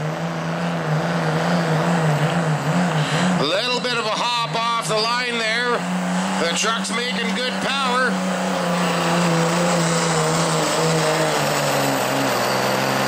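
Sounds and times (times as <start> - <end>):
diesel engine droning under load: 0.0 - 13.0
voices: 3.2 - 8.2.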